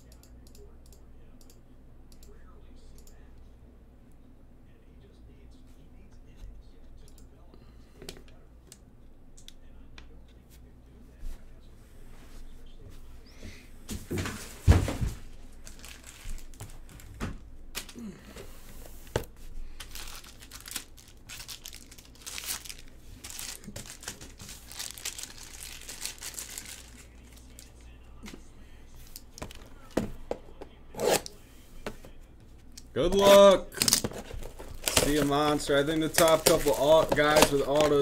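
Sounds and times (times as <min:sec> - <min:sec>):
plastic shrink-wrap crinkling and tearing: 0:15.6 - 0:17.1, 0:19.8 - 0:27.7, 0:33.8 - 0:38.0.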